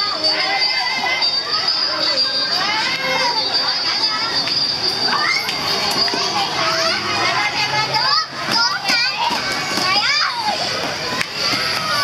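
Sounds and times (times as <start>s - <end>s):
steady high-pitched tone: 0.0s - 8.4s
children playing and calling out: 0.0s - 12.0s.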